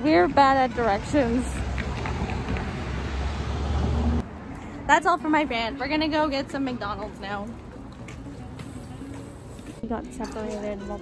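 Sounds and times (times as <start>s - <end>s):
street traffic rushing: 0.0s - 11.0s.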